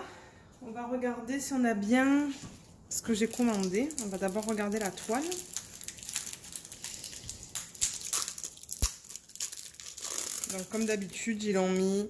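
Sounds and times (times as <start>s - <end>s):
plastic film crinkling: 2.6s - 12.0s.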